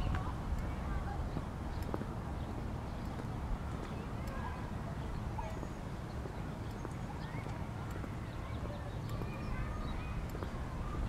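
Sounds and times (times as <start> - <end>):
footsteps on concrete: 0.0 - 4.6, 5.4 - 11.0.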